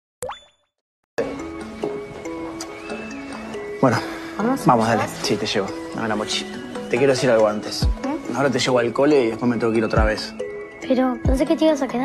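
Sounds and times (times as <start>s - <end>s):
rising pop sound effect: 0.2s - 0.7s
background music simple melody: 1.2s - 12.0s.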